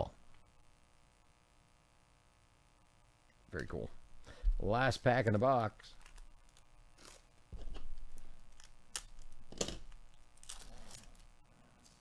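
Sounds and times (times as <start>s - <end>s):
wrapper tearing and crinkling: 5.9s - 12.0s.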